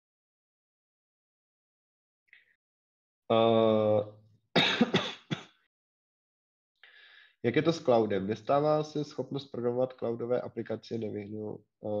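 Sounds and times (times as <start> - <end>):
man coughing: 4.6 - 5.5.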